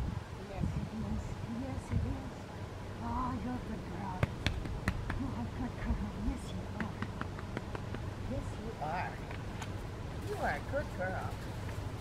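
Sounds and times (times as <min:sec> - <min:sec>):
sharp clicks and taps: 0:04.2 - 0:05.3, 0:06.7 - 0:08.1.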